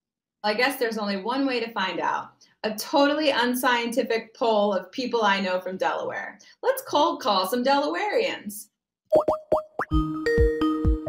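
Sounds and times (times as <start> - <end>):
quick rising bloops: 9.1 - 10.0.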